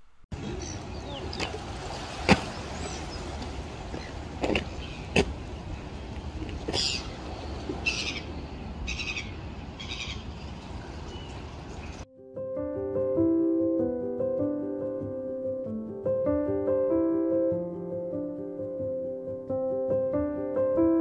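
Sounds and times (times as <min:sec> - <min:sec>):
gulls calling: 0:00.0 - 0:12.0.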